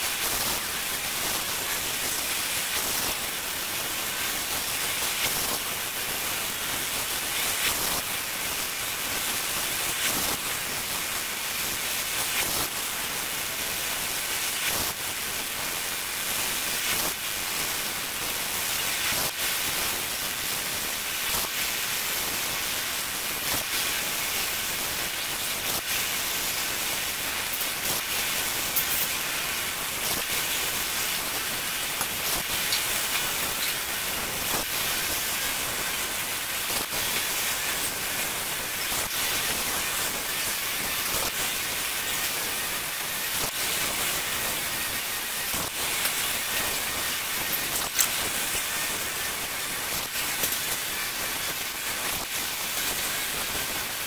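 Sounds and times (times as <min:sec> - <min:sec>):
laser engraver hiss: 0:00.0 - 0:54.0.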